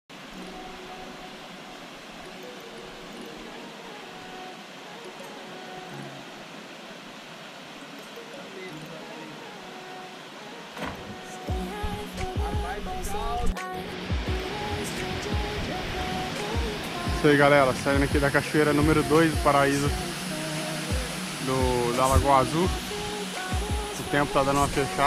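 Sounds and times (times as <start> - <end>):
faint music: 0.1 - 25.0
waterfall rushing: 0.1 - 25.0.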